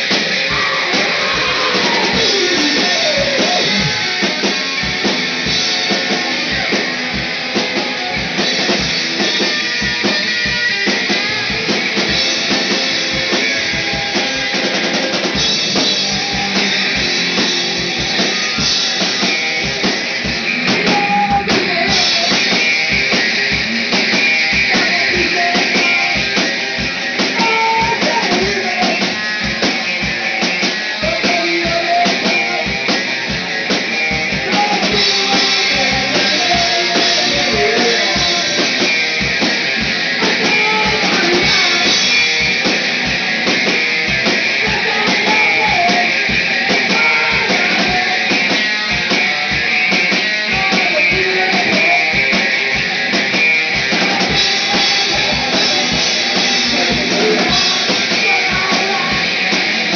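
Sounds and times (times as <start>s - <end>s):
drum kit: 0.0s - 59.9s
electric guitar: 0.0s - 59.9s
steady kick drum beat: 0.0s - 59.9s.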